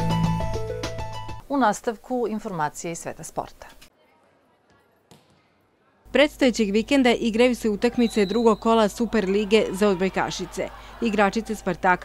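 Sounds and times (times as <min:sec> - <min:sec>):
volleyball bouncing on floor: 0:05.1 - 0:05.5.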